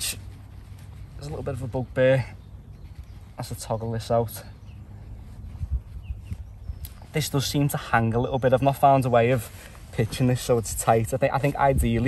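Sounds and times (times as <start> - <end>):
tent fabric rustling: 0.0 - 11.8.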